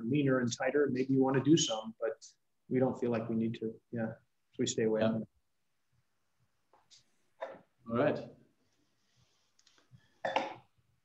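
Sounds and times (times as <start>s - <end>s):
man speaking: 0.0s - 5.4s.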